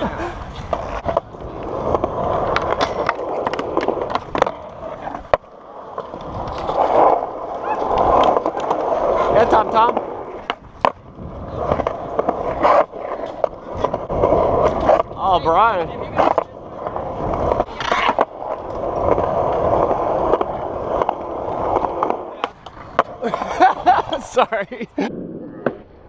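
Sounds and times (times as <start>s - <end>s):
skateboard clicks and knocks: 0.0s - 24.7s
skateboard wheels rolling on concrete: 0.0s - 26.0s.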